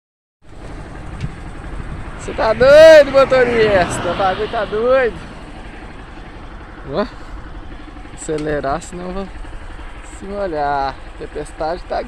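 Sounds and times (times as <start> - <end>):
low rumbling road noise: 0.4 - 12.0
wind rush from moving vehicle: 0.5 - 8.1.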